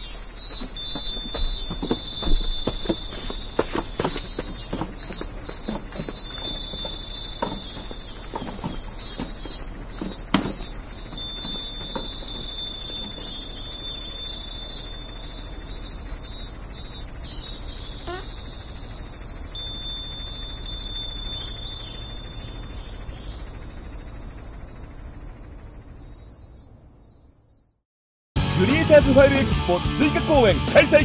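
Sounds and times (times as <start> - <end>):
insect chorus buzzing trills: 0.0 - 27.8.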